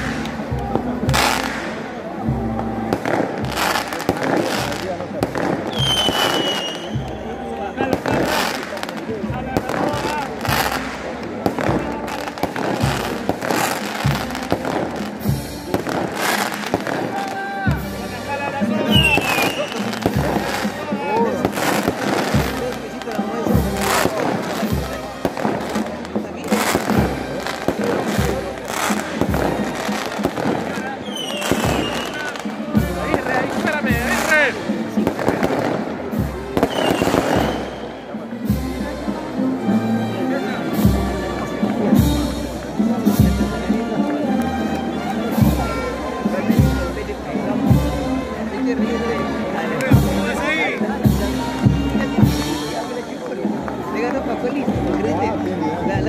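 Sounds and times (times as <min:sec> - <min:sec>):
firecrackers banging: 0:00.0 - 0:55.4
crowd voices: 0:00.0 - 0:56.0.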